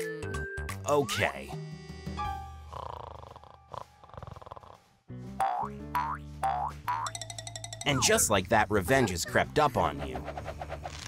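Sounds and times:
playful comic music: 0:02.2 - 0:11.0
rattling snore: 0:02.7 - 0:05.0.

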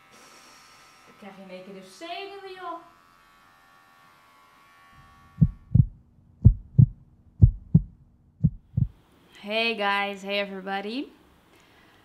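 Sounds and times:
low steady hum: 0:05.0 - 0:09.0
heartbeat thumps: 0:05.4 - 0:09.0.

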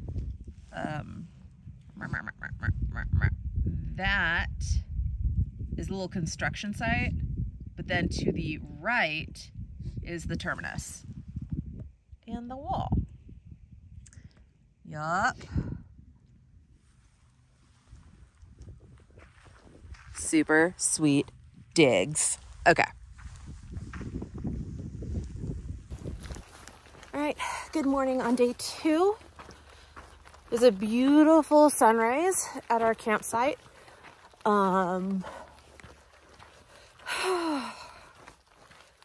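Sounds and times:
wind rumble on microphone: 0:00.0 - 0:29.8
soft footsteps on dirt: 0:16.8 - 0:39.0.

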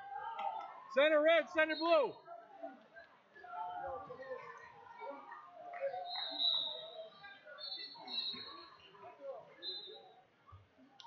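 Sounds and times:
indistinct overlapping voices: 0:00.0 - 0:11.0.

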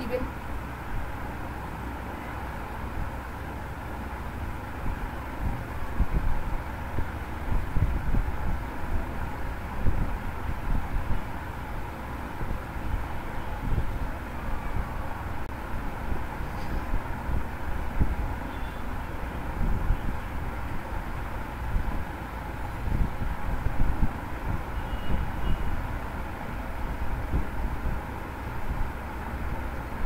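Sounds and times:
low rumbling background noise: 0:00.0 - 0:30.0.

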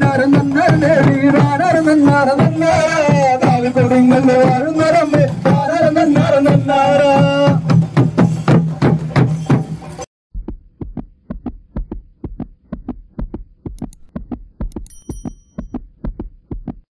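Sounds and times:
procession drumming: 0:00.0 - 0:09.0
heartbeat-like thumping: 0:10.3 - 0:16.9
click: 0:13.8 - 0:14.1
short chime: 0:14.8 - 0:15.8.

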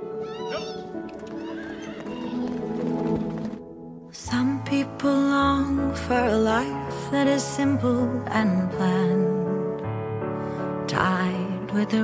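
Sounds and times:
soft film score music: 0:00.0 - 0:12.0
horse whinnying: 0:00.2 - 0:03.4.

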